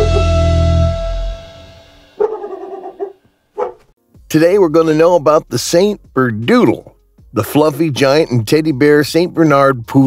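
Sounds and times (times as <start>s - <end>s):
dog whining: 2.2s - 3.9s
dog yipping: 2.2s - 3.9s.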